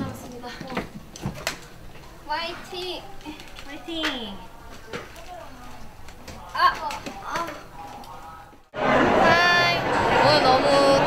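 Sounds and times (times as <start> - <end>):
louder voices: 8.2 - 11.0.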